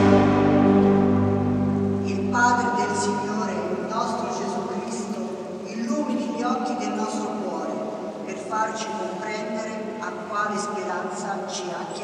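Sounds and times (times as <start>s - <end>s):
church music sustained chord: 0.0s - 10.0s.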